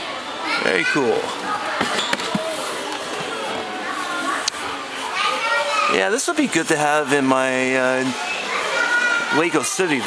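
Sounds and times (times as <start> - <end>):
children talking and playing: 0.0 - 10.0.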